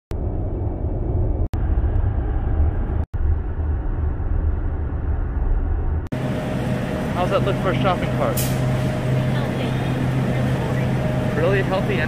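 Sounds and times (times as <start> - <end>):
road and wind rumble of car: 0.1 - 12.0.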